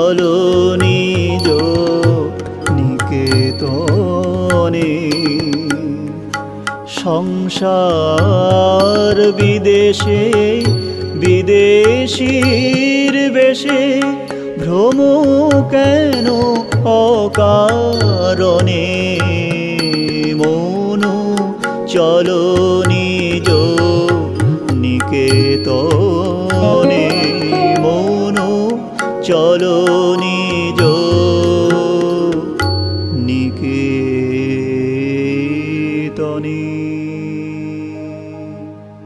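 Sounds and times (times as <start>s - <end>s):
devotional singing: 20.6s - 32.6s, 33.2s - 38.6s
percussion strokes: 23.1s - 29.4s
sustained instrumental accompaniment: 24.0s - 31.0s
person singing held note: 26.6s - 28.8s.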